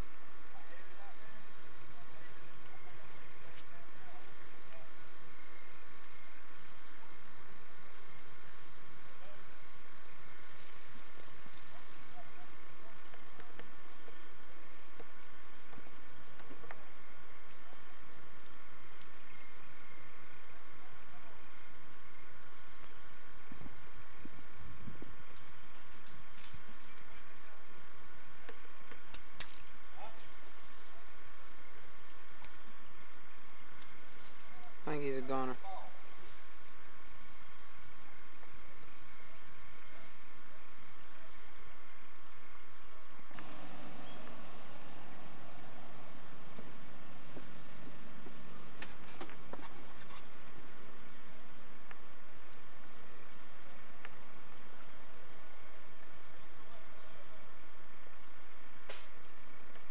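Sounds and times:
high-pitched hum and hiss: 0.0s - 59.9s
faint click: 28.4s - 29.7s.

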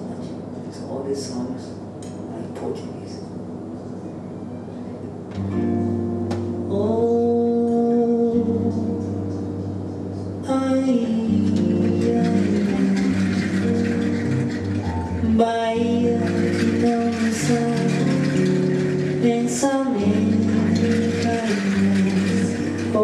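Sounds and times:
strummed acoustic guitar chords: 5.4s - 23.0s
hand percussion: 11.0s - 23.0s.

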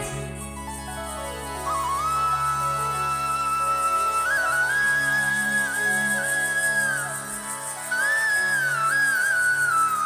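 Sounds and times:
flute melody: 0.0s - 10.0s.

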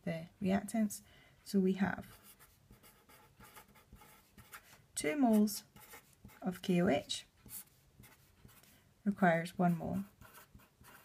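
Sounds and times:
pen scratching on paper: 2.0s - 6.7s, 7.4s - 8.7s, 9.7s - 11.0s.

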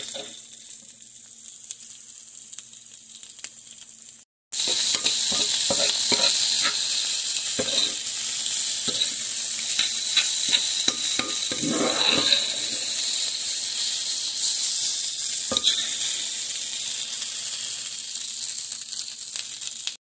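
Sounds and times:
metal spoon scraping a pan: 0.0s - 0.4s, 4.6s - 13.3s, 15.5s - 16.2s
food sizzling in a skillet: 0.0s - 20.0s.

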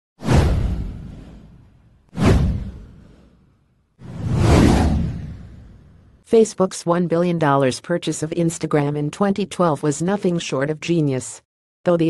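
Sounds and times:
whoosh with deep rumble: 0.2s - 6.2s.

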